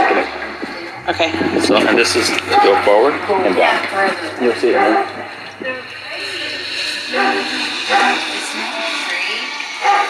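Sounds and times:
faint low hum: 0.0s - 9.4s
people talking: 0.0s - 10.0s.

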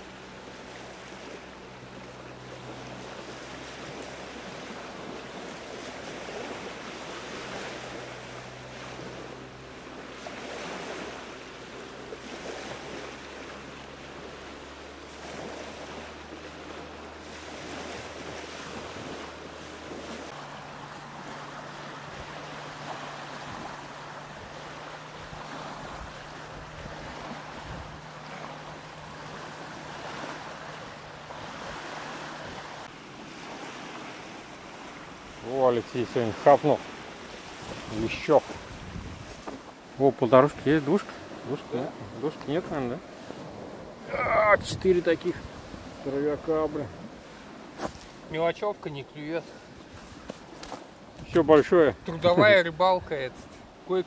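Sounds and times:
small waves lapping on shore: 0.0s - 54.0s
wind buffeting microphone: 17.6s - 34.4s, 36.9s - 39.8s, 41.4s - 48.3s.

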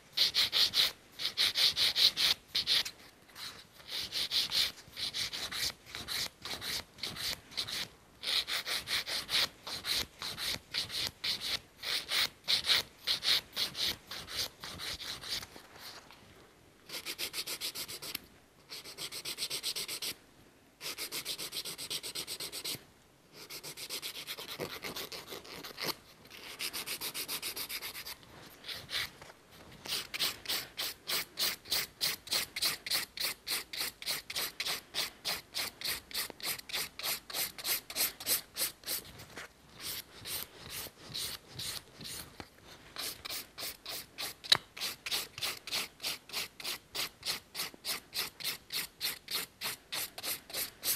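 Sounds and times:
nail file rasping on nail: 0.2s - 15.5s, 16.9s - 20.2s, 20.8s - 22.8s, 23.4s - 29.1s, 29.8s - 39.1s, 39.8s - 42.3s, 43.0s - 50.9s.

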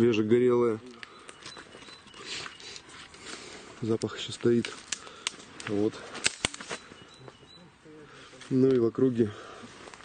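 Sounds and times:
faint high chirps: 0.8s - 3.1s, 6.6s - 8.1s
sharp clicks: 4.0s - 6.8s.

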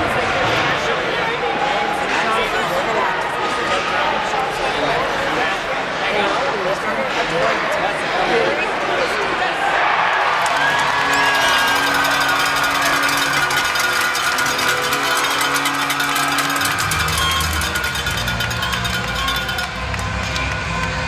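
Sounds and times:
arena music: 10.4s - 21.0s.

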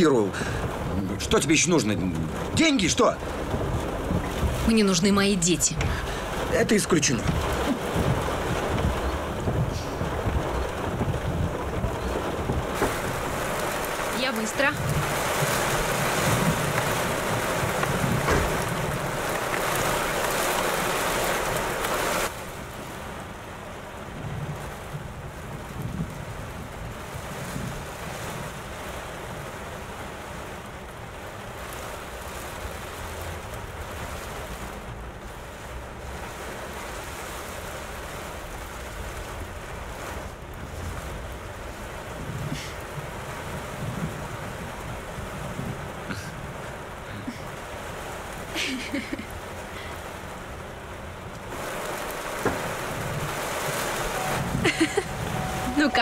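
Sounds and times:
heavy rain pouring: 0.0s - 56.0s
rain heard from inside a car: 0.0s - 56.0s.

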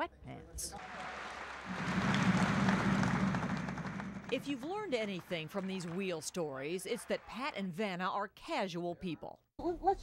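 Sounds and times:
audience applause: 0.8s - 7.4s.

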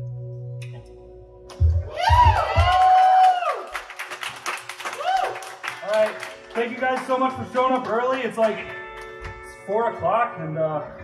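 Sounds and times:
audience clapping: 1.5s - 9.5s
loud song: 1.6s - 3.9s.

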